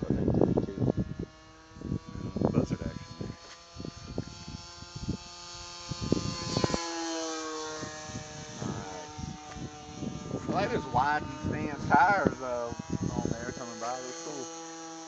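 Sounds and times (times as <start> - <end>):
model plane motor whine: 0.0 - 15.0.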